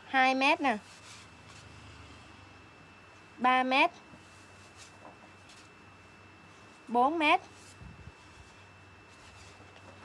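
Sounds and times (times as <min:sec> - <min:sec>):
low steady hum: 0:00.0 - 0:10.0
fabric rustling: 0:04.2 - 0:05.8, 0:07.5 - 0:10.0.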